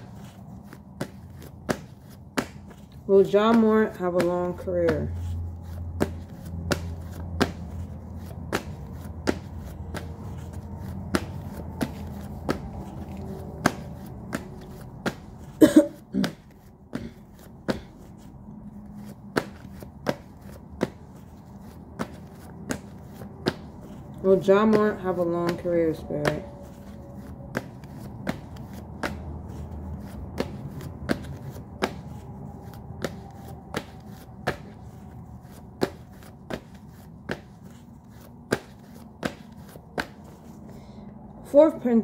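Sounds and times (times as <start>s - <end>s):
cards being shuffled: 0.0s - 41.1s
steady low hum: 0.0s - 42.0s.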